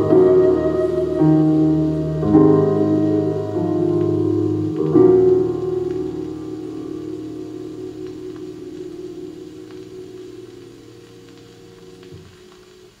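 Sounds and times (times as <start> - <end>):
piano chord over loudspeakers: 0.0 - 12.4
record surface noise ticks: 0.0 - 13.0.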